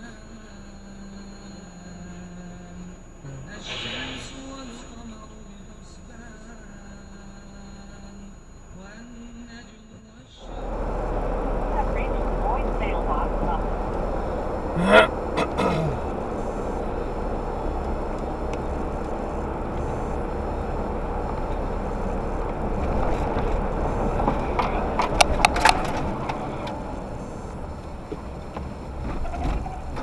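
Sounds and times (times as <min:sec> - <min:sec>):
vehicle road and engine noise: 0:00.0 - 0:30.0
short rising voice: 0:14.7 - 0:16.1
sharp clicks: 0:15.2 - 0:28.7.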